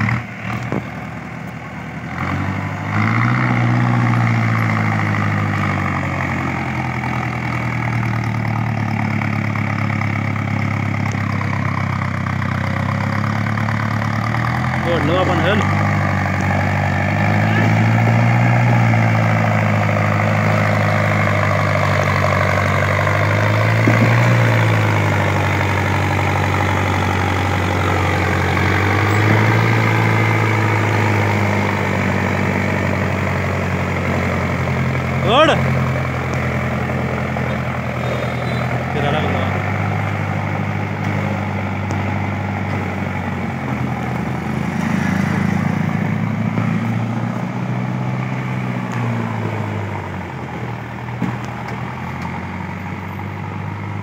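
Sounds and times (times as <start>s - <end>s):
tractor diesel engine labouring: 0.0s - 54.0s.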